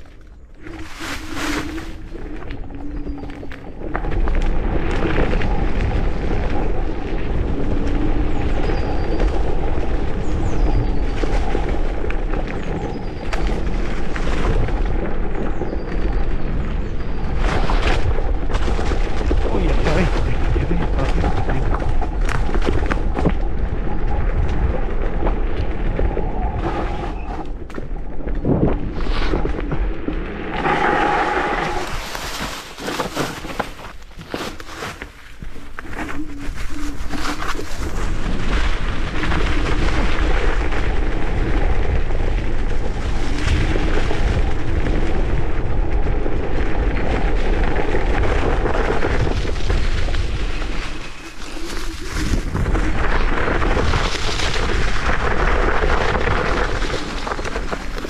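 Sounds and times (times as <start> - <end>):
wind buffeting microphone: 0.0 - 33.1, 35.4 - 58.0
tyres rolling over leaves: 0.0 - 58.0.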